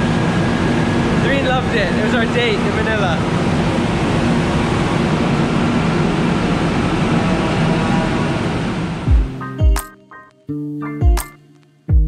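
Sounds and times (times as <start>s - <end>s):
train rumble and hiss: 0.0s - 9.1s.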